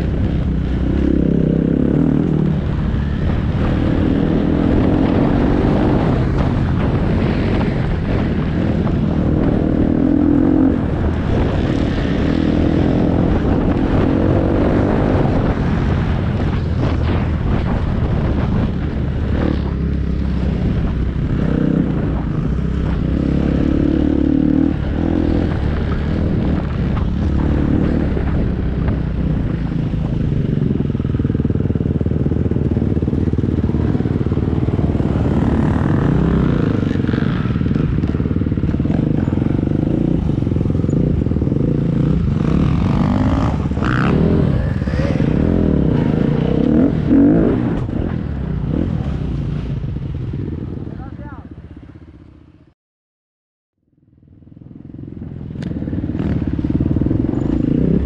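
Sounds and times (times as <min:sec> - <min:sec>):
dirt bike engine revving: 0:31.8 - 0:49.2.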